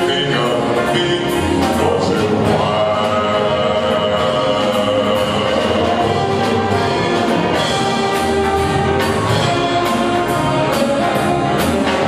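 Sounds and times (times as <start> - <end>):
horn section sustained chords: 0.0 - 12.0.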